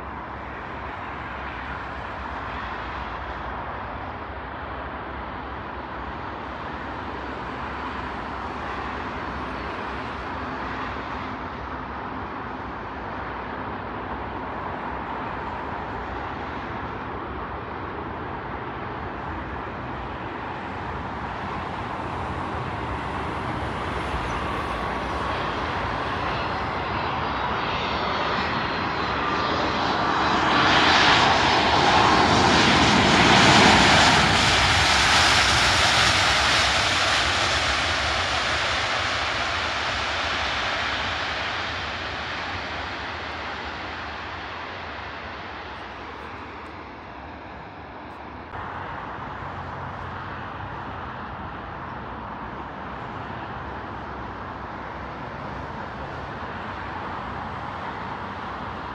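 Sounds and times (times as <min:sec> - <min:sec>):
jet engine noise: 0:00.0 - 0:58.9.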